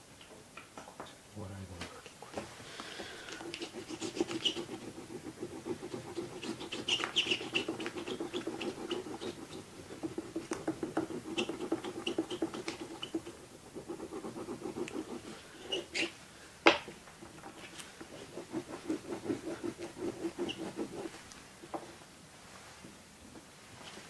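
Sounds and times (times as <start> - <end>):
oil pastel scratching: 3.4 - 16.2, 17.2 - 21.2.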